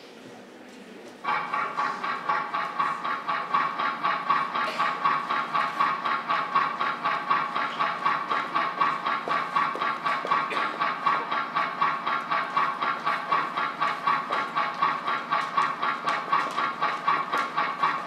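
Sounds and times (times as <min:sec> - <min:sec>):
steady rhythmic pulsing: 0:01.1 - 0:18.0
steady ringing tone: 0:01.2 - 0:18.0.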